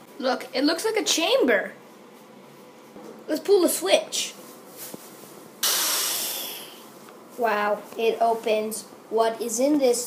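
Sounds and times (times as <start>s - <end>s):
mouth-made hiss: 5.6s - 6.9s.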